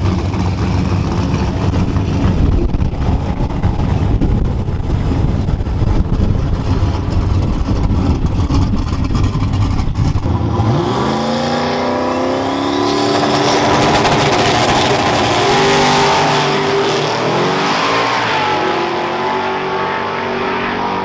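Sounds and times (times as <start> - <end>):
race car engine revving: 0.0 - 21.0.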